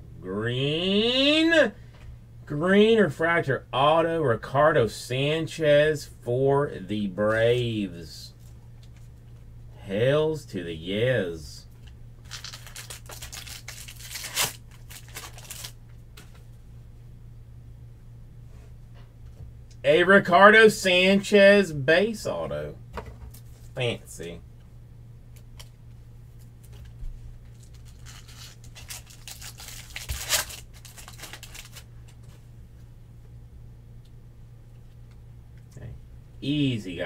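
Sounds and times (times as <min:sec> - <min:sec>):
foil wrapper tearing and crinkling: 0:12.2 - 0:15.8, 0:27.5 - 0:31.9.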